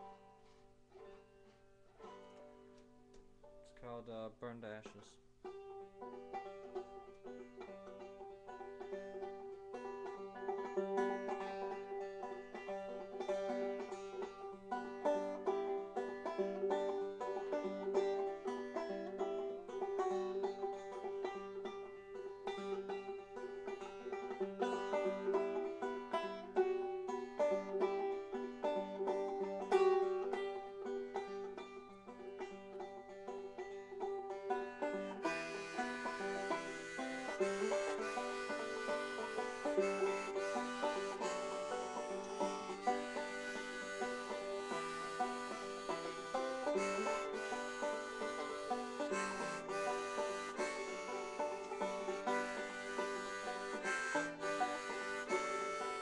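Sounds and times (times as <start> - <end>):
banjo picking: 0.0 - 56.0.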